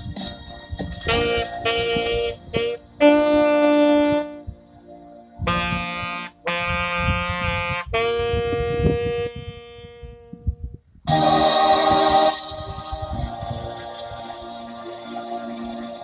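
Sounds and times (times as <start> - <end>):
saxophone long notes: 1.0 - 4.6, 5.4 - 14.2.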